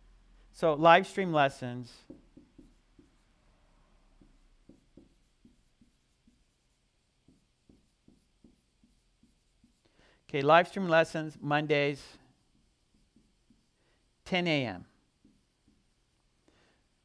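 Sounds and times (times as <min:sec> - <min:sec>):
marker scratching on whiteboard: 0:01.0 - 0:10.0, 0:10.6 - 0:16.1.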